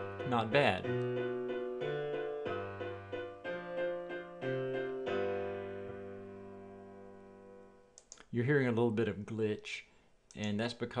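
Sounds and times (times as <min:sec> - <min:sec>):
piano playing blues-rock chords: 0:00.0 - 0:07.8.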